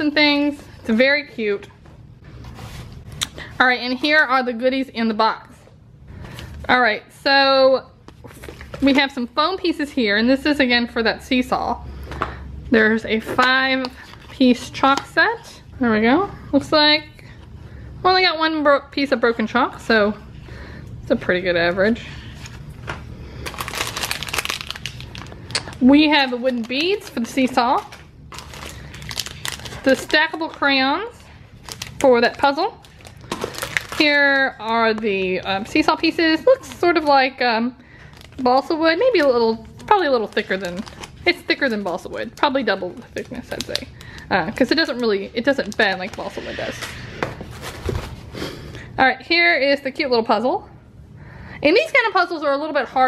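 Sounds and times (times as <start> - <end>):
paper and cardboard rustling: 2.4 - 3.6, 44.6 - 48.3
plastic bag crinkling: 23.3 - 46.9.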